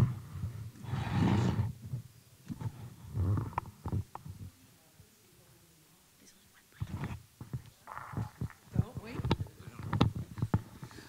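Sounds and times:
microphone handling knocks: 6.9 - 11.0.

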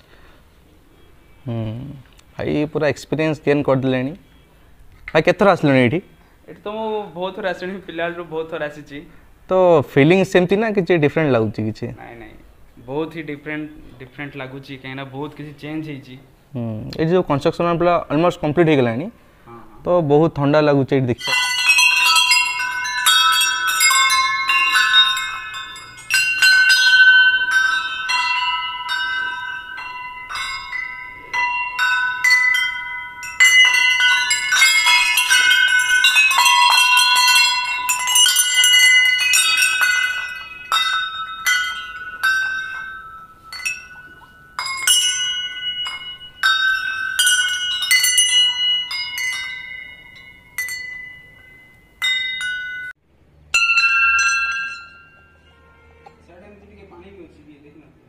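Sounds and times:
brass bells clanging: 21.2 - 56.8.

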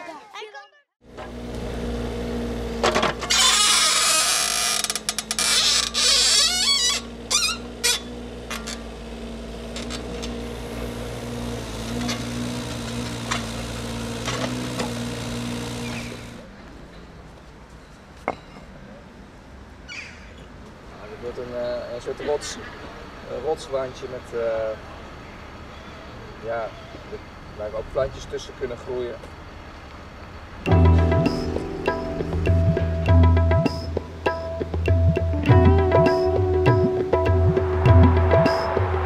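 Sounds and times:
small diesel engine running: 1.0 - 3.8, 6.0 - 16.6.

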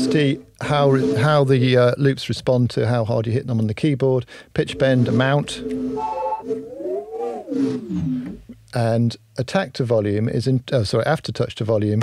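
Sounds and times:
pitch-bent synth loop: 4.6 - 8.6.

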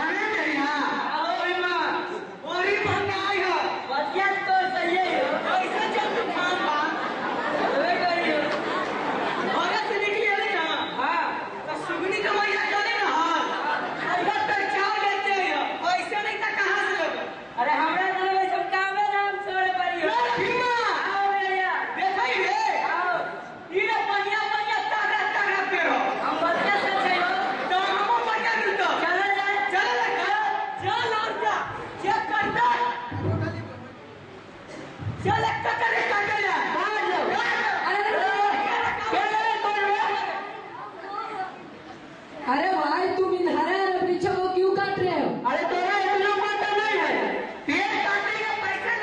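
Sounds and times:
people talking at once: 0.0 - 49.0
indistinct chatter of voices: 2.0 - 17.6, 21.9 - 49.0.

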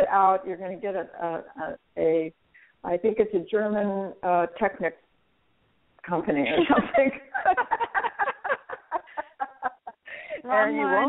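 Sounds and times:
woman laughing: 6.4 - 10.5.

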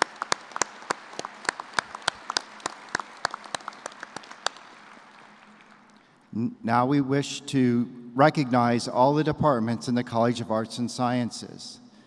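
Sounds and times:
audience applauding: 0.0 - 6.3
sharp claps close to microphone: 0.0 - 6.3.

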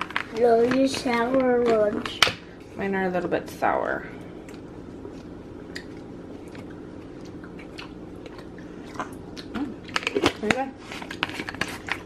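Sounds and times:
steady low hum: 0.0 - 12.0
chewing gummy: 4.4 - 12.0.

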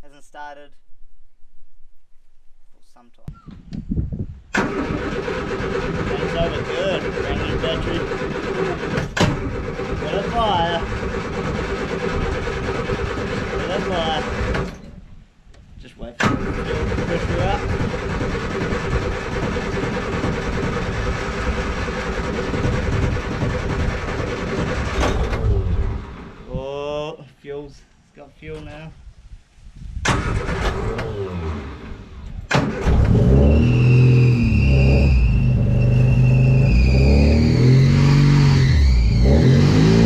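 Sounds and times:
car engine starting and running: 4.5 - 15.0, 16.2 - 26.5, 30.0 - 40.0.

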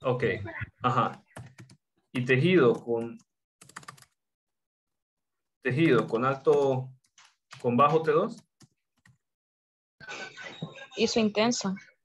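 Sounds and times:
computer keyboard keys clicking: 2.7 - 4.2.

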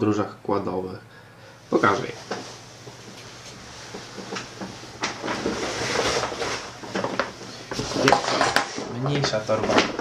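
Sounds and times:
nylon bag rustling and scraping: 5.1 - 8.8.

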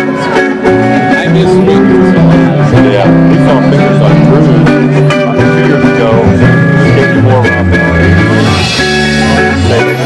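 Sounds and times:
live band playing rock: 0.0 - 10.0.

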